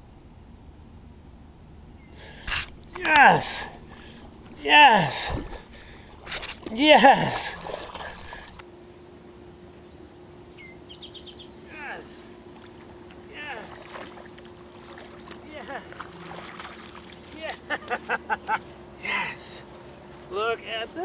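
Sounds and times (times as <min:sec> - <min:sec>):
faint steady hum: 0:00.0 - 0:21.0
insect chirping: 0:01.9 - 0:21.0
bird-like calls: 0:10.5 - 0:16.2.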